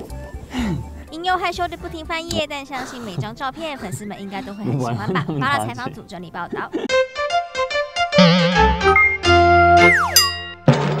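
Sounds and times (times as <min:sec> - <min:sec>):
cartoonish synthesizer jingle: 0:08.1 - 0:10.4.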